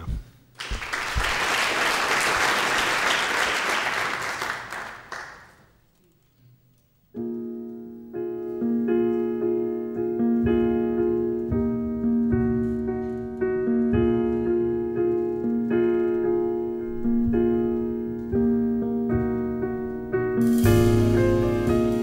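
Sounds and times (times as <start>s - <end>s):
audience applause: 0.6s - 5.7s
grand piano jazz chords: 7.1s - 22.0s.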